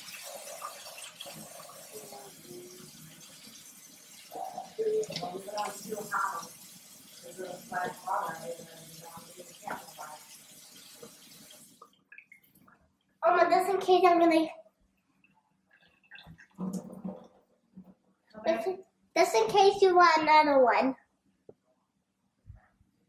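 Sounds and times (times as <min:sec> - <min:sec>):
faucet running into a metal sink: 0:00.0 - 0:12.0.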